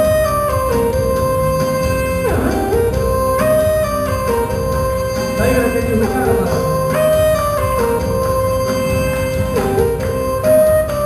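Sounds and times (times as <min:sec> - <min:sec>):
electronic keyboard melody: 0:00.0 - 0:11.0.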